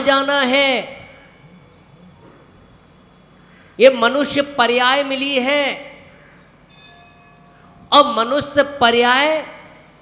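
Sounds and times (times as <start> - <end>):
temple bell ringing faintly: 6.7 - 7.9.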